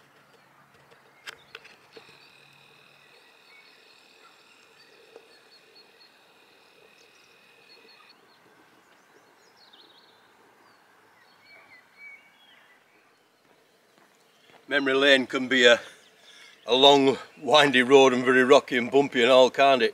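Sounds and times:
bird chirps: 0.0s - 17.8s.

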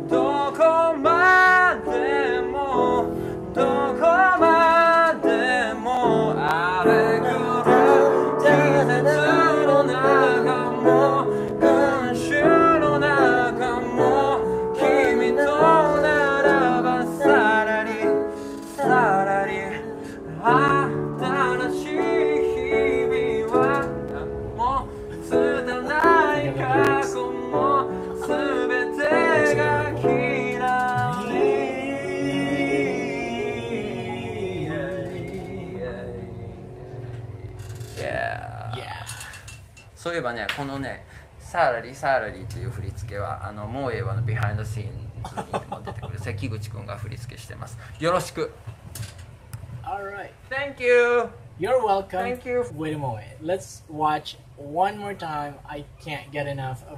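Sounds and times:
man singing: 0.0s - 37.0s
upright piano accompaniment: 0.0s - 39.3s
man speaking: 38.0s - 39.3s, 40.2s - 48.6s.

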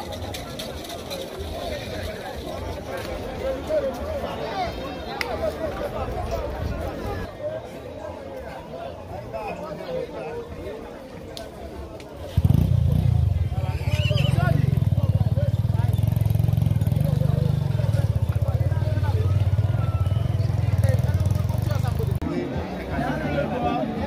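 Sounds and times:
faint crowd voices: 0.0s - 24.0s.

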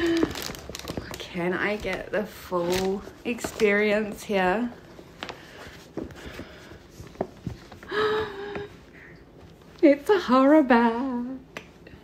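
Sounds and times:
fabric bag rustling: 0.0s - 7.9s.

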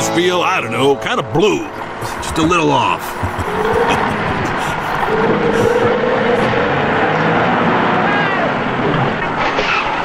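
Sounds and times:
diesel engine running: 1.0s - 8.8s.

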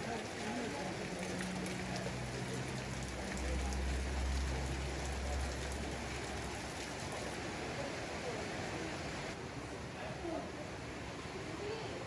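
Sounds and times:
rain on roofs and ground: 0.0s - 12.0s.

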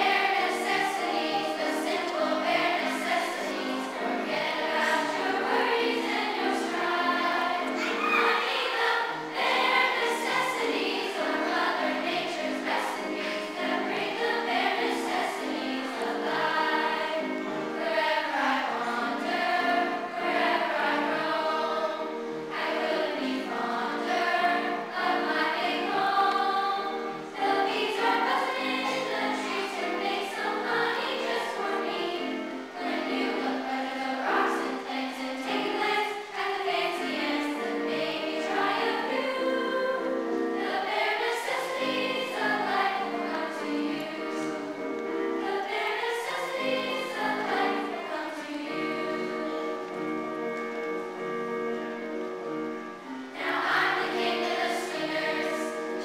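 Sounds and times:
children's choir singing: 0.0s - 56.0s.

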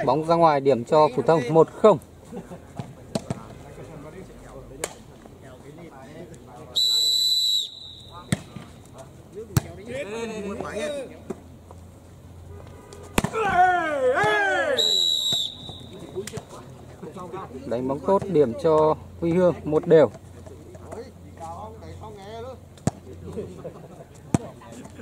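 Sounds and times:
referee's whistle blasts: 6.8s - 8.4s, 14.6s - 16.1s
ball being struck: 8.2s - 8.7s, 13.1s - 13.4s
men shouting: 13.2s - 15.1s.

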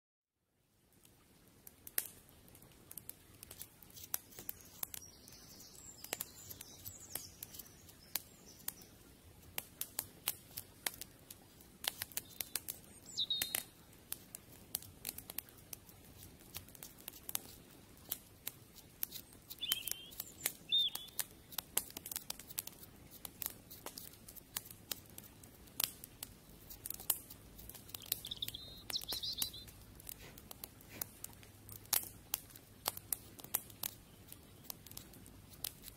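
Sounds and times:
wood fire crackling: 0.7s - 35.9s
short bird chirps: 4.5s - 8.9s, 12.2s - 13.7s, 19.5s - 21.2s, 27.9s - 29.7s.

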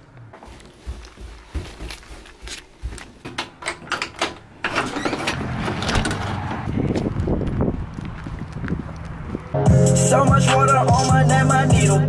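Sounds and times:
door swinging open: 3.1s - 6.7s
door handle unlatching: 3.3s - 6.6s.

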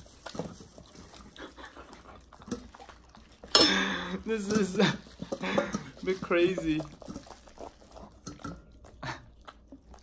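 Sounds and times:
dog chewing and licking: 0.0s - 10.0s.

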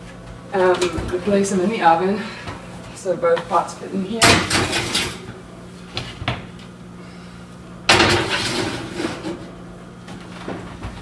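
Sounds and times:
steady low hum: 0.0s - 11.0s
oven door banging shut: 7.9s - 8.8s.

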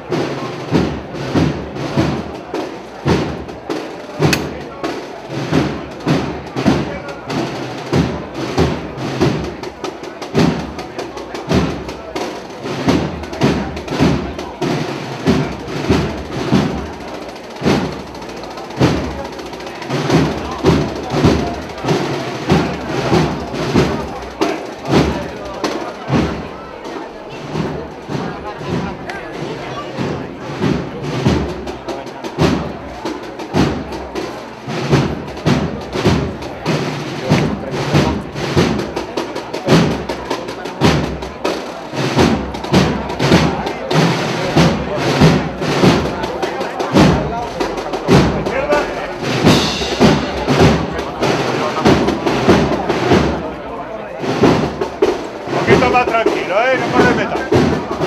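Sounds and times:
drums keeping march beat: 0.0s - 58.0s
processional band music: 0.0s - 58.0s.

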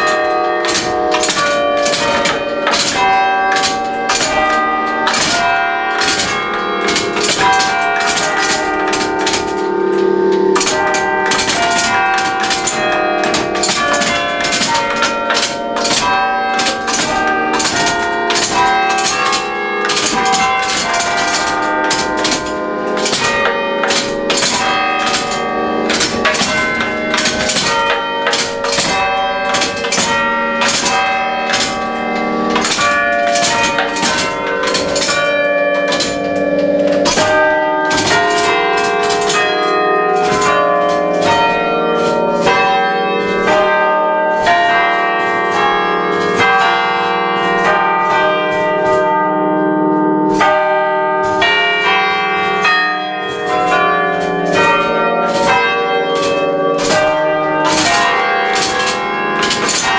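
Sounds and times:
church bells playing a tune: 0.0s - 59.9s.

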